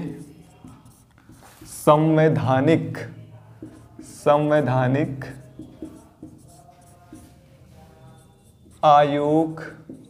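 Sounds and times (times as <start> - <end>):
marker scratching on whiteboard: 0.0 - 10.0.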